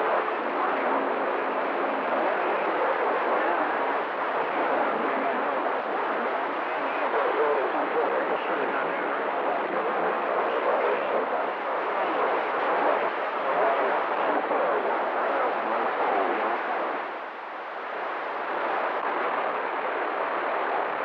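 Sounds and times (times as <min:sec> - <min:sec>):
faint garbled radio voices: 0:00.0 - 0:21.0
radio static hiss: 0:00.0 - 0:21.0.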